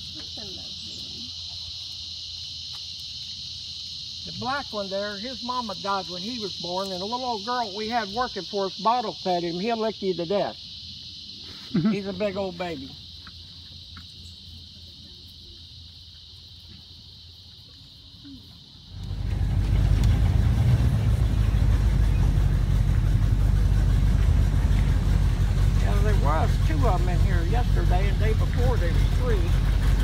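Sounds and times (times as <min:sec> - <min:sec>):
high insect buzz: 0:00.0 - 0:28.8
airboat engine and propeller: 0:19.1 - 0:30.0.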